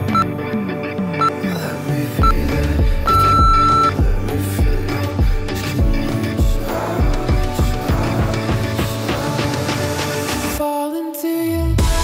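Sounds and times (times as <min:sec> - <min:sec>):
timer beeps: 0:00.0 - 0:00.3, 0:02.2 - 0:02.4, 0:03.1 - 0:04.0
electronic music with steady beat: 0:02.2 - 0:09.5.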